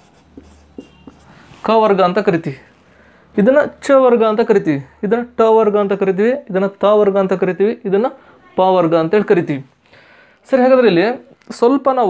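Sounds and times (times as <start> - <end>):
marker writing on whiteboard: 0.0 - 2.0
man speaking: 0.9 - 2.8, 3.4 - 9.7, 10.4 - 12.0.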